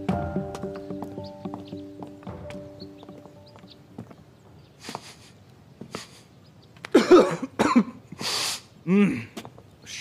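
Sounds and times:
man coughing: 6.9s - 8.0s, 8.9s - 9.4s.

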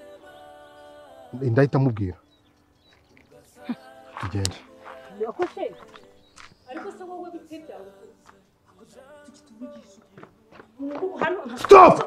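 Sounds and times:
person speaking: 4.2s - 4.6s.

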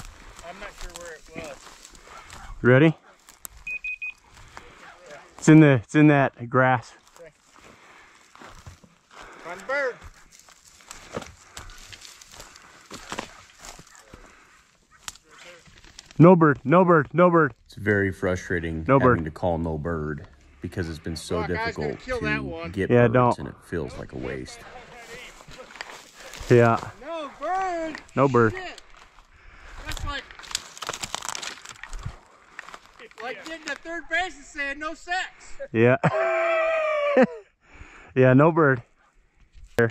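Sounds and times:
footsteps through dry brush: 0.0s - 5.6s, 6.8s - 16.2s, 24.1s - 34.1s.

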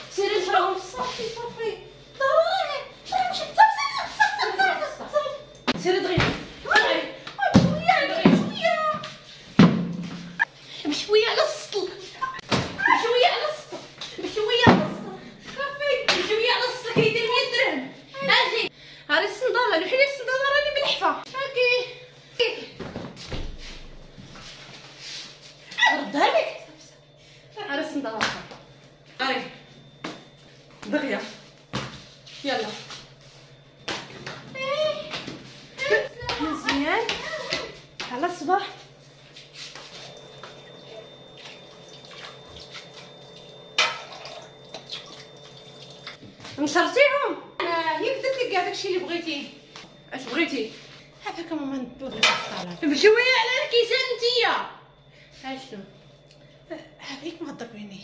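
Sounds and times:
woman talking: 0.0s - 9.2s, 10.7s - 22.9s, 25.8s - 28.5s, 29.2s - 29.6s, 30.8s - 31.4s, 32.3s - 33.0s, 35.8s - 38.9s, 46.6s - 54.8s, 55.4s - 56.0s, 56.7s - 58.0s.

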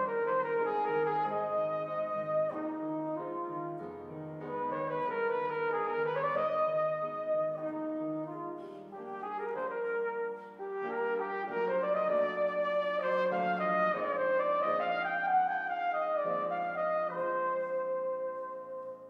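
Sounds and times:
piano accompaniment: 0.0s - 19.0s
trumpet melody: 0.0s - 19.0s.

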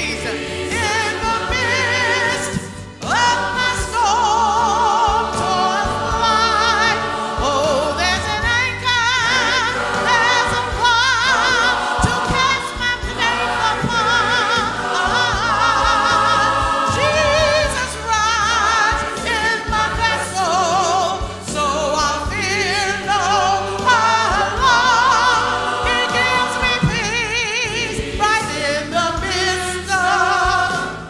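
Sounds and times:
church choir singing: 0.0s - 31.0s.

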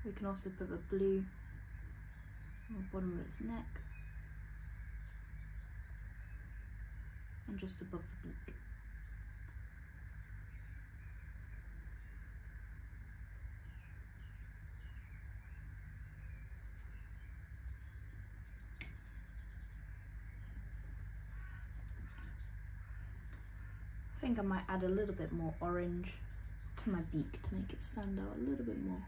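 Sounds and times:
faint bird chirps: 0.0s - 29.0s
low steady rumble: 0.0s - 29.0s.

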